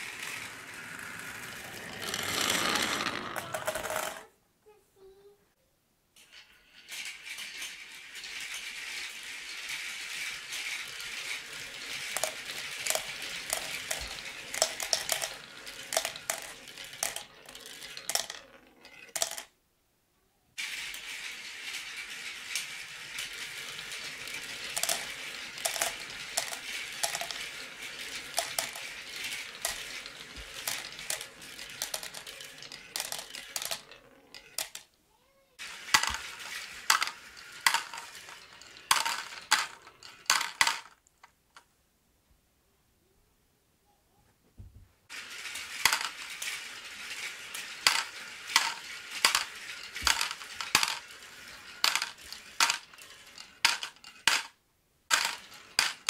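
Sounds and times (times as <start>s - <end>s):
marbles rolling down a marble run: 0.0s - 4.3s, 6.2s - 19.5s, 20.6s - 41.6s, 45.1s - 56.0s.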